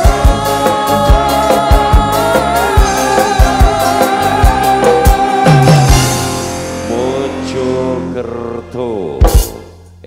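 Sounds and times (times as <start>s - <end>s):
drum beats: 0.0s - 6.8s, 9.2s - 10.0s.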